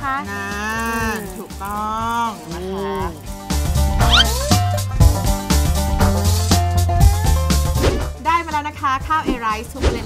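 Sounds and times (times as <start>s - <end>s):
upbeat music with bass beat: 3.2s - 7.8s
rising squeaky sound effect: 4.1s - 4.5s.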